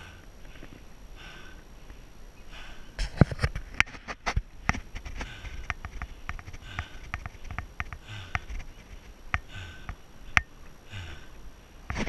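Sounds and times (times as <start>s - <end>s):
person breathing hard: 0.0s - 3.5s, 5.0s - 12.0s
sharp sniff-like clicks: 5.0s - 10.5s.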